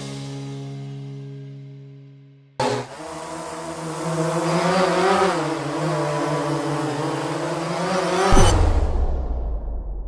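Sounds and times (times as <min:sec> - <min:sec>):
drone propellers humming: 0:02.6 - 0:09.0.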